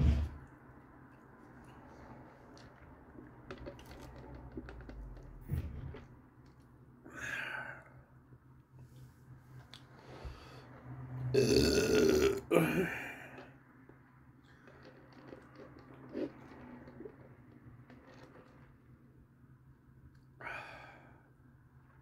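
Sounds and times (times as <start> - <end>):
man belching: 11.4 - 13.0.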